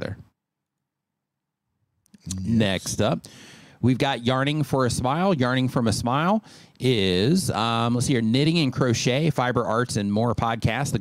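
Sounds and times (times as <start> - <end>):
man's voice: 2.2 - 11.0.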